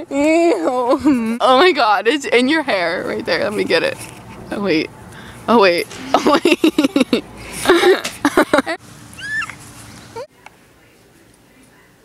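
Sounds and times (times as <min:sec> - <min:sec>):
people laughing: 0:06.0 - 0:08.8
dog whining: 0:09.2 - 0:09.6.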